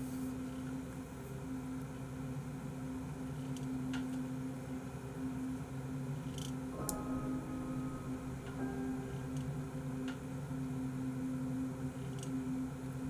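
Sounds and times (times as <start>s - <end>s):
low steady hum: 0.0s - 13.0s.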